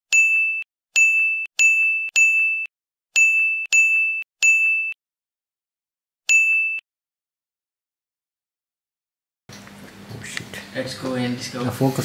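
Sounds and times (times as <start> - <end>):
high-pitched ding: 0.2 - 5.0.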